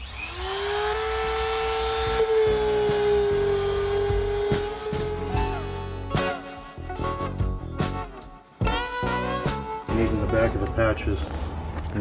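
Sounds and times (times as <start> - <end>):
rotary tool grinding whine: 0.0 - 6.4.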